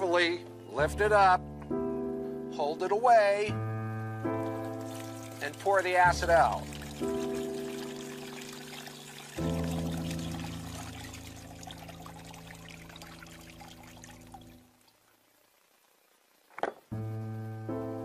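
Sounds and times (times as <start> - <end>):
music of long held chords: 3.5 - 14.5, 17.0 - 18.0
liquid trickling into plastic bucket: 4.4 - 14.6.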